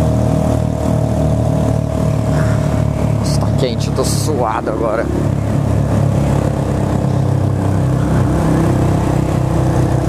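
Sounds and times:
motorcycle engine cruising: 0.0 - 10.0
wind and road noise: 0.0 - 10.0.

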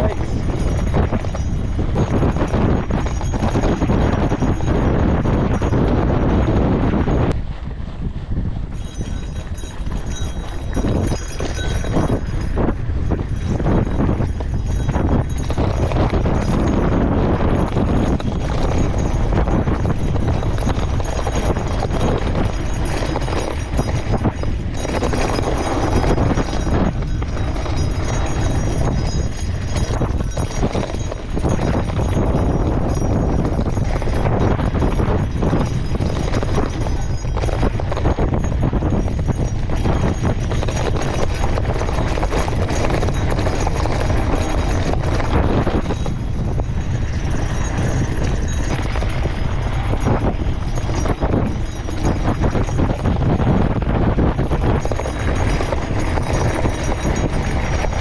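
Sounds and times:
bike rattling and clattering: 0.0 - 58.0.

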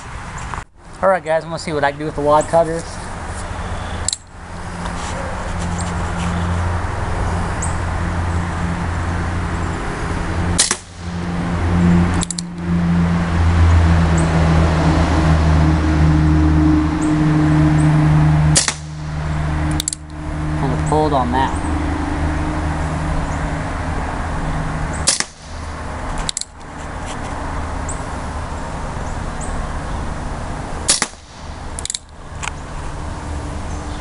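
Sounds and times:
air pistol pops: 10.6 - 10.9, 25.1 - 25.5, 30.9 - 32.0.

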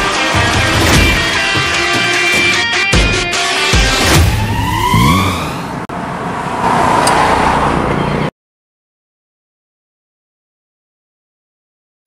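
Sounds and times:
car engine revving: 0.3 - 8.2
car rushing: 0.4 - 8.3.

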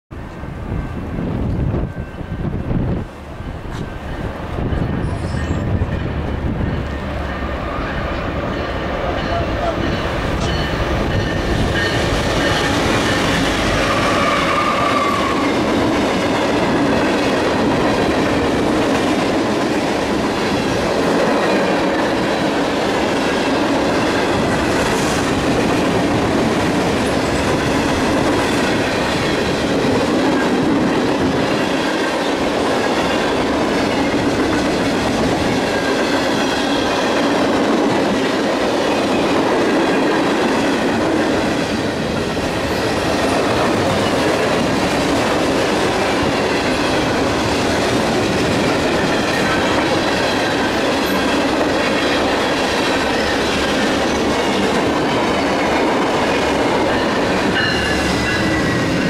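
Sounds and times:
diesel locomotives rumbling: 0.1 - 59.0.

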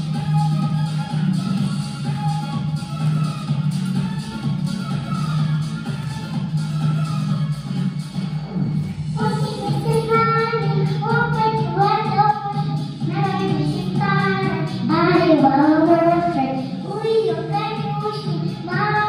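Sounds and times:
recorded backing track: 0.0 - 19.0
girl singing into a microphone: 9.2 - 19.0.

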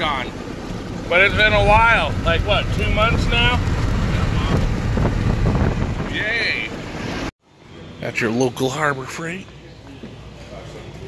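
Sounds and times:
truck cabin road rumble: 0.0 - 7.3.

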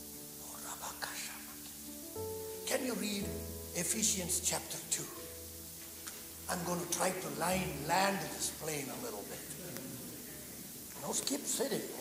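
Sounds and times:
soft music with sustained chords: 0.0 - 12.0
person whispering: 0.4 - 1.6.

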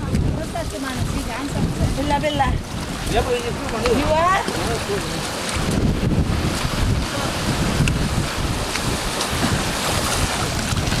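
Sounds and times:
sea water washing among rocks: 0.0 - 11.0
wind buffeting microphone: 0.0 - 11.0.

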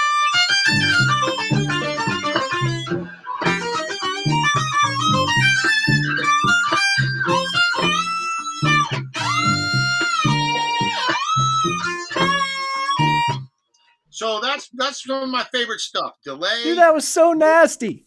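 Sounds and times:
distorted violin with octave effect: 0.0 - 13.4.

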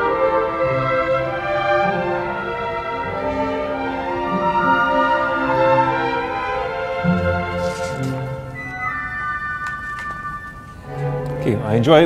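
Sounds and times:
orchestra playing sustained chords: 0.0 - 12.0.

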